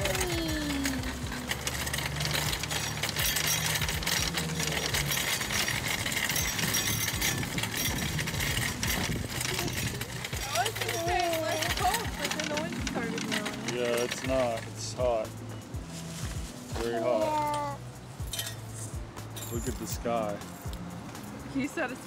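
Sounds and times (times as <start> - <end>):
shopping cart rattling on asphalt: 0.0 - 15.3, 19.4 - 20.3.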